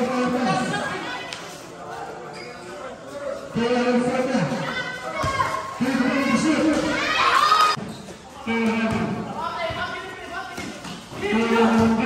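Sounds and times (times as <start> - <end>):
voices shouting: 4.6 - 7.8
basketball bouncing on concrete: 10.5 - 12.0.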